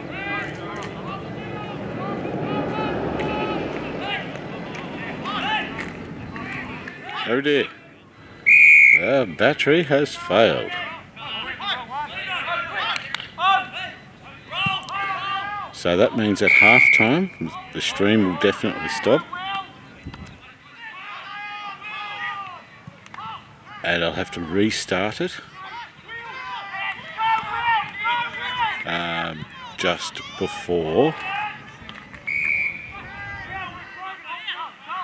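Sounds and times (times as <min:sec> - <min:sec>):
people calling out: 0:00.0 - 0:24.7, 0:25.4 - 0:35.0
voices shouting: 0:00.0 - 0:35.0.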